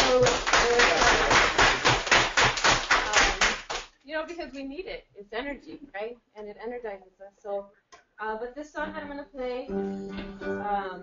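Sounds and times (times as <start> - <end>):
audience applause: 0.0 - 3.8.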